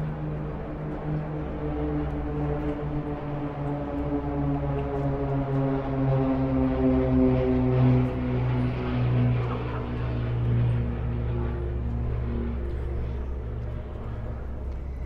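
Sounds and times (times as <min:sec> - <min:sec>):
low engine drone: 0:00.0 - 0:15.0.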